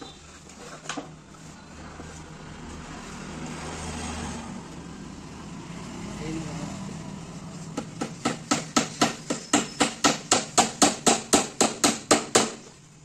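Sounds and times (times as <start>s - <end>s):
motor vehicle passing: 1.5s - 8.3s.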